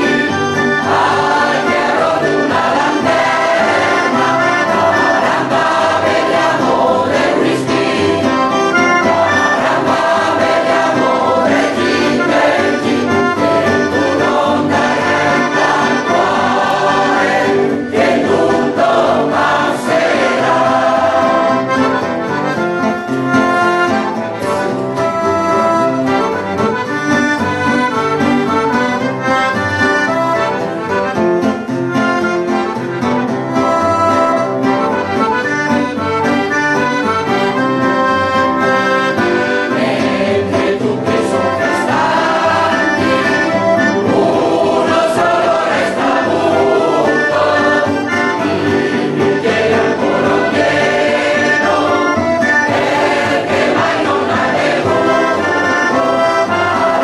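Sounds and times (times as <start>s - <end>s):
mixed choir singing in harmony: 0.0s - 22.6s, 37.1s - 57.0s
accordion: 0.0s - 57.0s.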